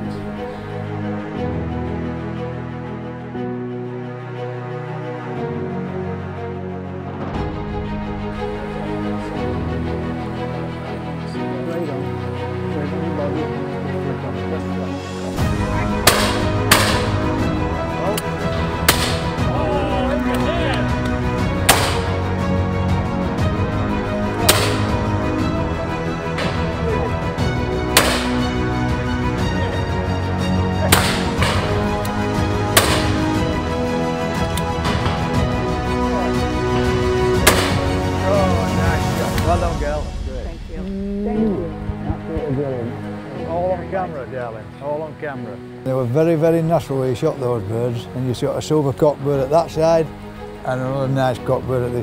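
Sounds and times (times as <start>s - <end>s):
background music: 0.0s - 52.0s
shotgun shots: 24.5s - 24.9s, 28.0s - 28.4s, 30.9s - 31.6s, 32.8s - 33.2s, 37.4s - 37.9s.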